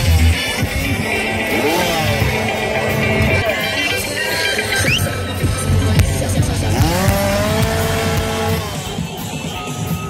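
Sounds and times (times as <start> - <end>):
motor revving: 0.0 - 9.1
music playing: 0.0 - 10.0.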